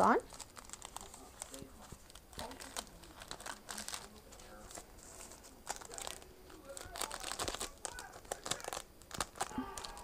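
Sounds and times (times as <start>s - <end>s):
cellophane sleeve crinkling: 0.0s - 10.0s.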